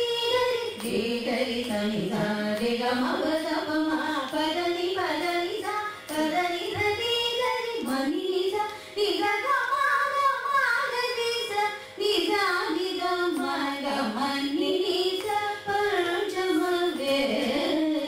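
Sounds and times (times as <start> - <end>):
women singing together: 0.0 - 18.0.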